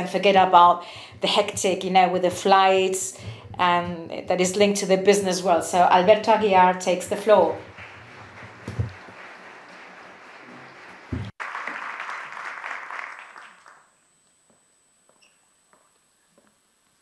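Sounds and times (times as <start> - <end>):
audience applauding: 7.4 - 13.9.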